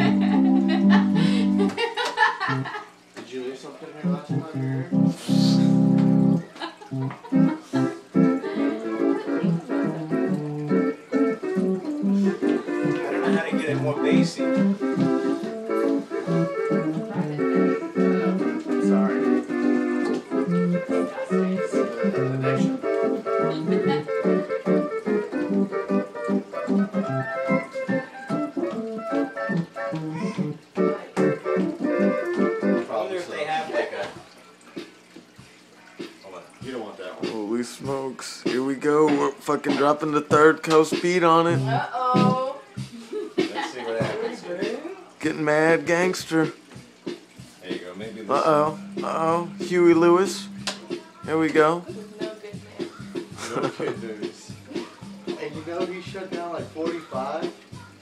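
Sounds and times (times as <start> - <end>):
electronic organ playing: 0.0 - 2.9, 3.9 - 33.8, 37.8 - 42.5, 48.2 - 50.6.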